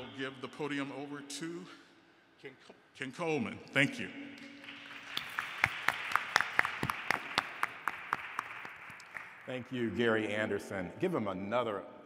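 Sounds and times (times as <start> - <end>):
audience applauding: 4.6 - 9.7.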